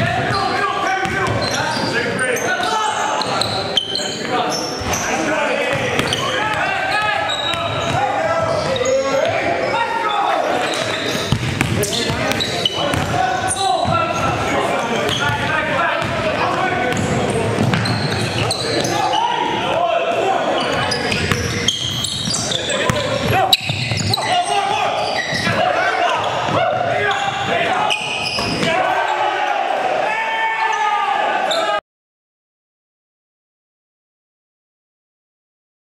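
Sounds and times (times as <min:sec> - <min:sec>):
players shouting: 0:00.0 - 0:31.8
basketball bouncing on hardwood: 0:11.3 - 0:13.2, 0:16.9 - 0:18.3.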